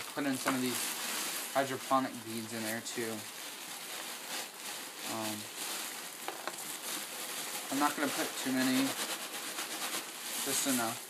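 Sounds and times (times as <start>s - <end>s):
plastic bag crinkling: 0.0s - 11.0s
potting mix rustling: 0.0s - 11.0s.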